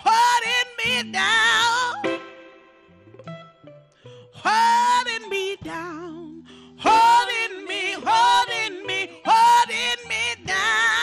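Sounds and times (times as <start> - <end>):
woman singing: 0.0 - 2.2, 4.3 - 11.0
soul band playing: 0.1 - 11.0.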